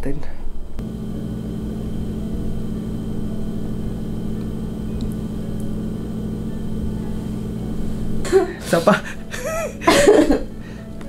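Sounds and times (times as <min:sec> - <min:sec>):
low-pitched hum: 0:00.6 - 0:11.0.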